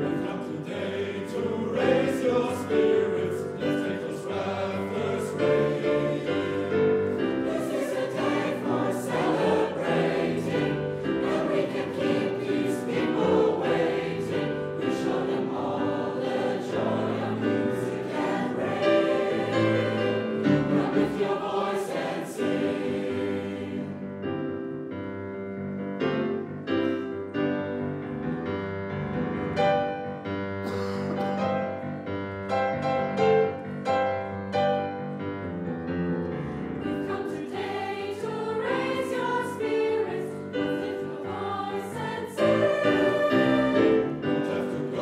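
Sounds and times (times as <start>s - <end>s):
choir singing: 0.0s - 24.4s, 36.4s - 45.0s
grand piano: 0.0s - 45.0s.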